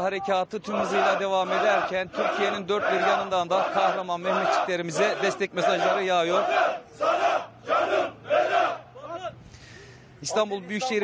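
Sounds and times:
men chanting in unison: 0:00.6 - 0:08.8.

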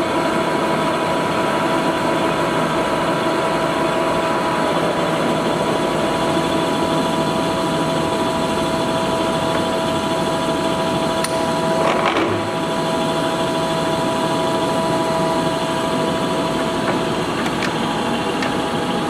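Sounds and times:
lathe running: 0:00.0 - 0:19.0
mechanical hum and whine: 0:00.0 - 0:19.0.

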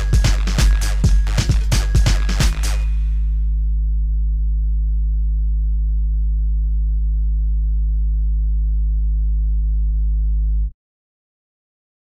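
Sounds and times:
deep bass note humming: 0:00.0 - 0:10.7.

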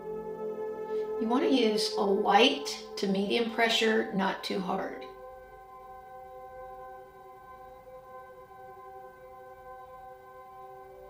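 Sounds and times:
soft ambient music: 0:00.0 - 0:11.0.

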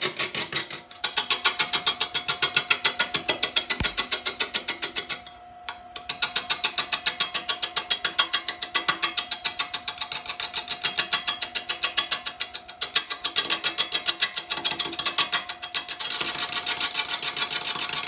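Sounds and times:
lathe tool knocking on wood: 0:03.2 - 0:04.3.

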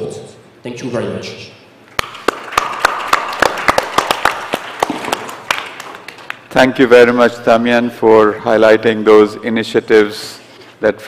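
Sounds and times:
audience applause: 0:02.0 - 0:06.5.

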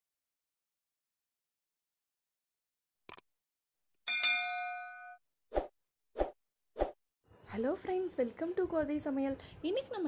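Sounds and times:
notification bell ding: 0:04.1 - 0:05.2.

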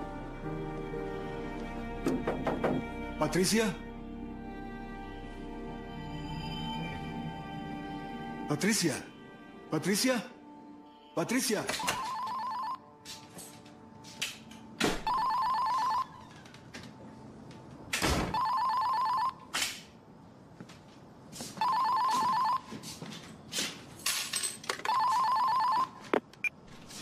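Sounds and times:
electronic telephone ringing: 0:11.8 - 0:12.8, 0:15.1 - 0:16.2, 0:18.4 - 0:19.4, 0:21.6 - 0:22.7, 0:24.9 - 0:26.0.

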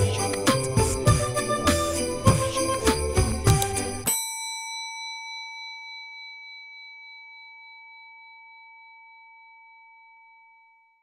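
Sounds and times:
bell-like chime ringing: 0:00.0 - 0:11.0.

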